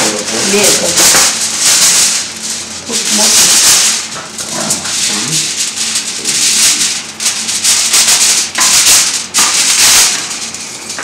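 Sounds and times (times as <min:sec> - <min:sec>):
aluminium foil crinkling: 0:00.0 - 0:11.0.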